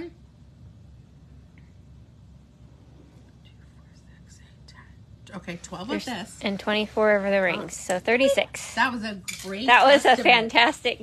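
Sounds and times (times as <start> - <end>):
woman whispering: 3.3 - 5.2.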